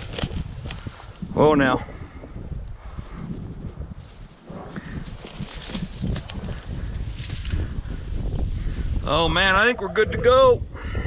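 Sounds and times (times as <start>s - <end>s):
footsteps through brush: 0.0s - 1.3s, 3.4s - 8.1s
wind rumbling on microphone: 0.0s - 11.0s.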